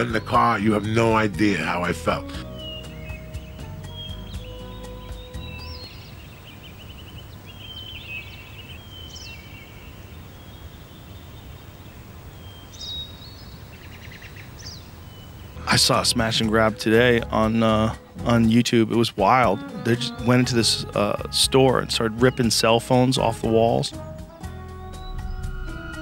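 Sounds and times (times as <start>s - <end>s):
birds chirping: 0.0s - 26.0s
low background noise: 5.4s - 19.6s
held music notes: 15.6s - 26.0s.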